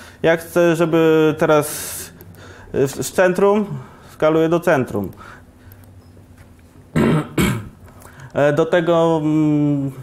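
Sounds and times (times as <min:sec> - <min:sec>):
man clearing his throat: 0:06.9 - 0:07.8.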